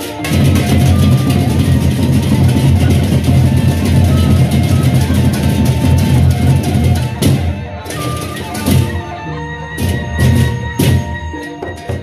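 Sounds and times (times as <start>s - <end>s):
barrel drums beaten: 0.0s - 9.0s, 9.8s - 12.0s.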